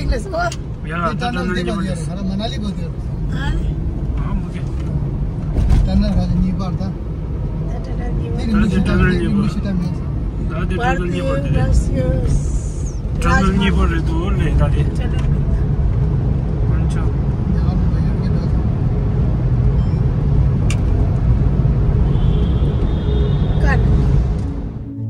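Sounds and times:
car road and engine rumble: 0.0 - 25.0.

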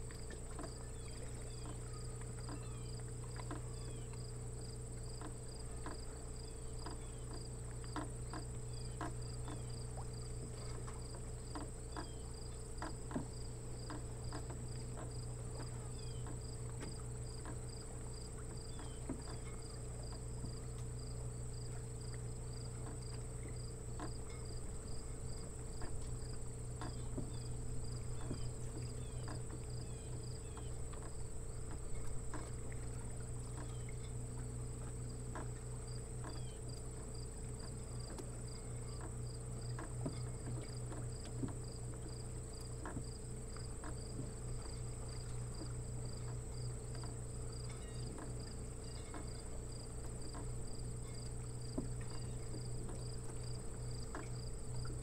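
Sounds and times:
faint clicks: 0.0 - 4.2
low hum: 0.0 - 55.0
insect chirping: 0.2 - 55.0.

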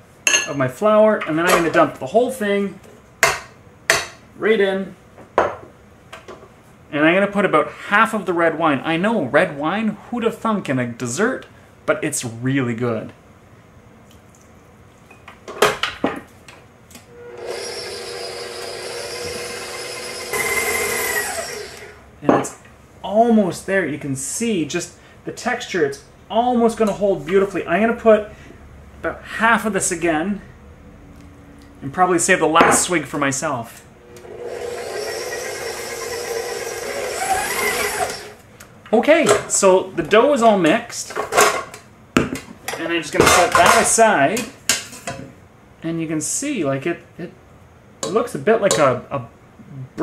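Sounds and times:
stand mixer motor running: 17.3 - 22.0, 34.1 - 38.4.

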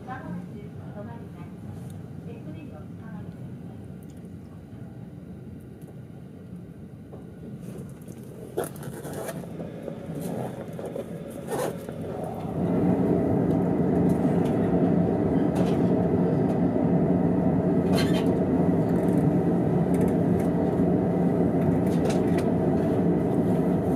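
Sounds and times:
steady multi-tone hum: 0.0 - 23.9
train running rumble: 7.4 - 23.9.

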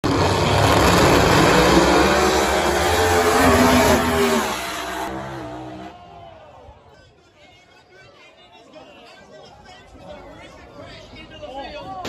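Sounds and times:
racing car engines at full throttle: 0.0 - 6.0.

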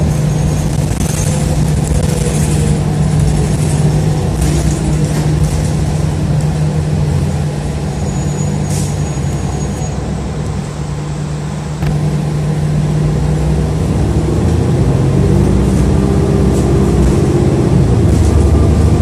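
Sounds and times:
bus engine drone: 0.0 - 19.0
road noise: 0.0 - 19.0.

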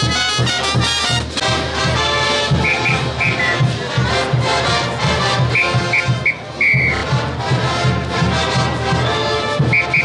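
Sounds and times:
brass band music: 0.0 - 10.0
steady drum beat: 0.0 - 10.0
whistle blowing: 2.6 - 3.7, 5.5 - 7.1, 9.6 - 10.0.

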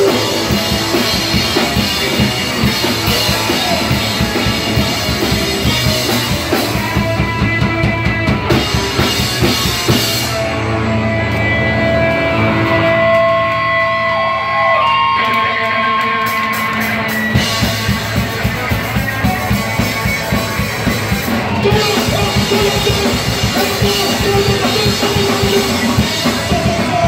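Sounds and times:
drum kit: 0.0 - 14.2, 16.2 - 27.0
loud electric guitar: 0.0 - 27.0.

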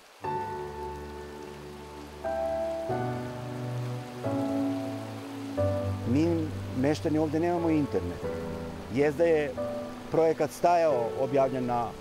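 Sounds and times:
steady hiss: 0.0 - 12.0
slow sustained chords: 0.2 - 10.2.

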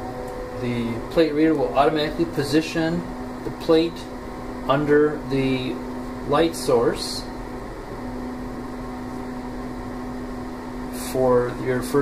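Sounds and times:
low machine hum with fan noise: 0.0 - 12.0.

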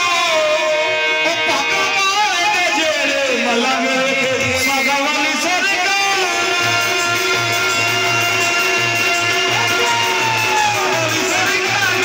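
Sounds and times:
harmonium: 0.0 - 12.0
man singing: 0.0 - 12.0
drum beat: 6.7 - 12.0.

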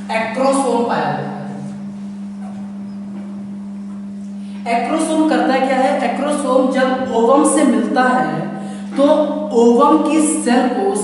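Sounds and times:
low hum: 0.0 - 9.7.

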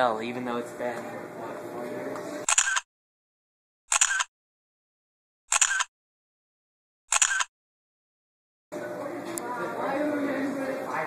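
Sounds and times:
faint murmur of voices: 0.4 - 2.4, 8.7 - 11.0
camera shutter click: 2.5 - 2.9, 3.9 - 4.3, 5.5 - 5.9, 7.1 - 7.5.

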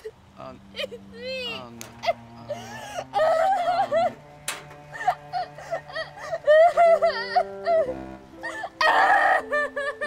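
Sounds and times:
soft background music: 0.4 - 10.0
high-pitched nervous laughter: 5.0 - 10.0.

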